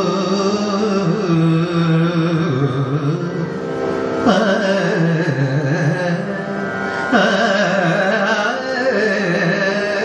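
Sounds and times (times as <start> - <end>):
man singing long bending notes: 0.0 - 10.0.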